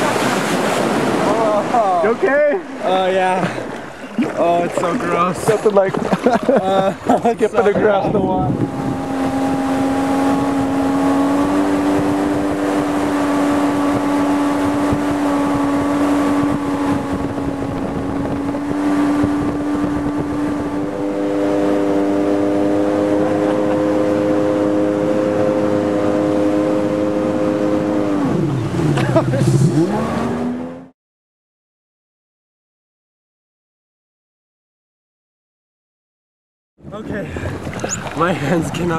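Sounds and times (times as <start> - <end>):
jet ski engine running: 0.0 - 30.8, 37.0 - 38.9.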